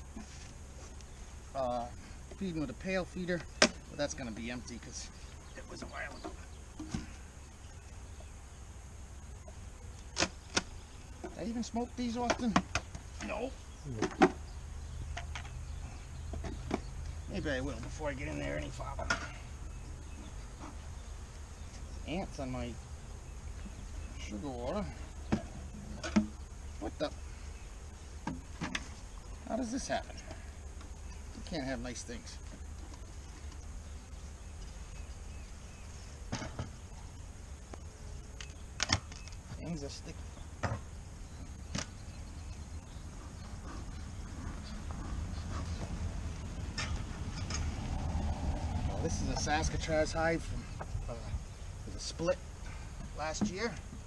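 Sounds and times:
wooden hive lid clicks and knocks: 0:03.4 - 0:03.9, 0:10.0 - 0:11.4, 0:12.2 - 0:13.3, 0:14.0 - 0:14.4, 0:16.3 - 0:16.9, 0:25.2 - 0:26.4, 0:38.3 - 0:39.4
bellows puffing air: 0:43.0 - 0:51.6.

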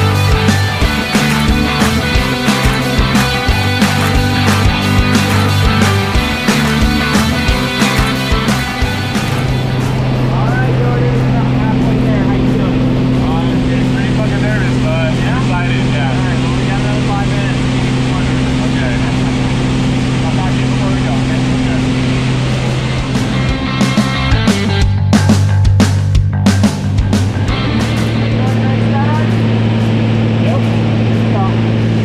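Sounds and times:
light aircraft engine drone: 0:00.0 - 0:24.8, 0:27.2 - 0:32.0
rock music: 0:00.0 - 0:32.0.

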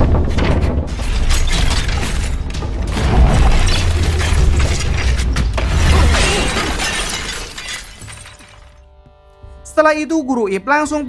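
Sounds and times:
deep rumble: 0:00.0 - 0:06.4
cracking and shattering: 0:00.0 - 0:08.8.

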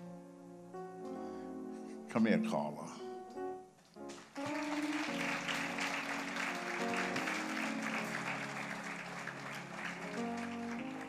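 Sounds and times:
soft instrumental music: 0:00.0 - 0:11.0
congregation applauding: 0:04.1 - 0:11.0.

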